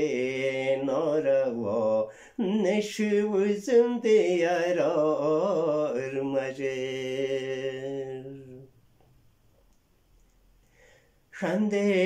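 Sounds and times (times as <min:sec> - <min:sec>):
man singing unaccompanied: 0:00.0 - 0:08.8, 0:11.3 - 0:12.0.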